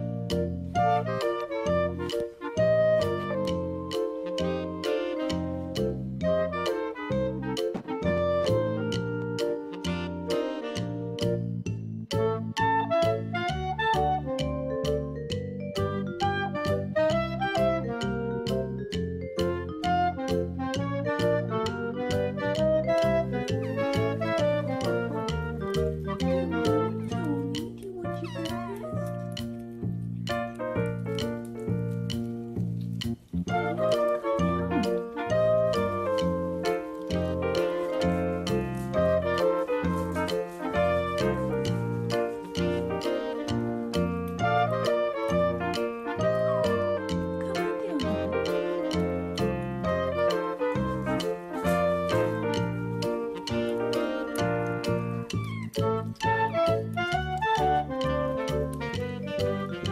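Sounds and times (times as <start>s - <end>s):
background music: 0.0s - 59.9s
kitten meowing: 26.5s - 29.0s.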